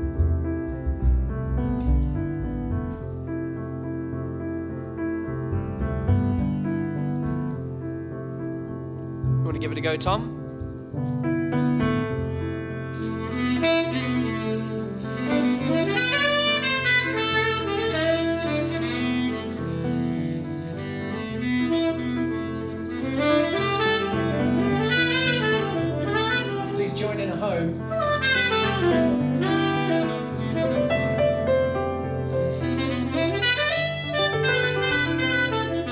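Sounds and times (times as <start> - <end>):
held low chords: 0.0 - 12.5
tenor saxophone jazz solo: 12.0 - 27.2, 27.8 - 35.9.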